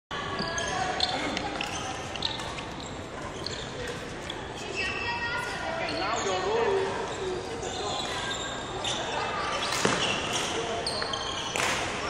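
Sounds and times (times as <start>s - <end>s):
shoe squeaks: 0.2s - 11.8s.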